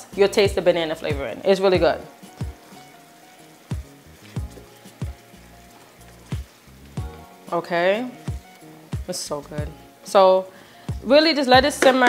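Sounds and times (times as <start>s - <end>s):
music with steady beat: 0.0s - 10.1s, 10.9s - 12.0s
faint sizzle in a pan: 0.0s - 12.0s.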